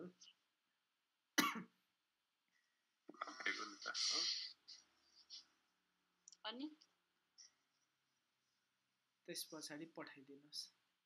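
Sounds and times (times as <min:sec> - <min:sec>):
person coughing: 0:01.4 - 0:01.7.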